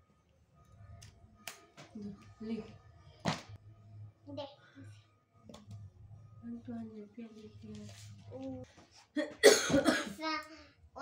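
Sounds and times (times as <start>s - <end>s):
young child coughing: 9.2s - 10.4s.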